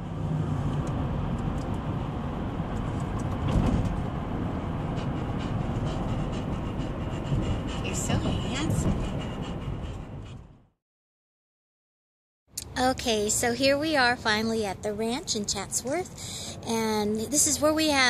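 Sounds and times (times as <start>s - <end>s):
car cabin road noise: 0.0s - 10.5s.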